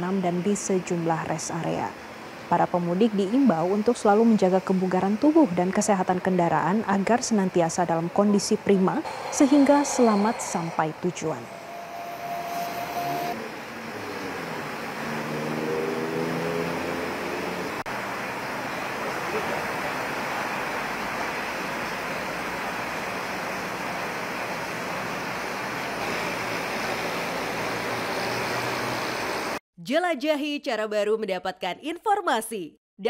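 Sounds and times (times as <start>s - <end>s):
highway traffic rushing: 0.0s - 29.6s
vehicle engine note: 9.0s - 17.8s.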